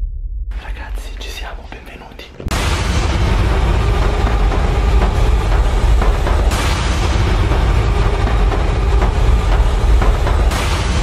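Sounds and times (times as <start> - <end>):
deep rumbling bass drone: 2.4 - 11.0.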